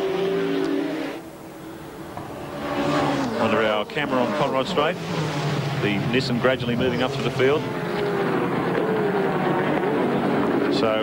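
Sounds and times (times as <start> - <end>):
racing car engines at high revs: 0.0 - 11.0.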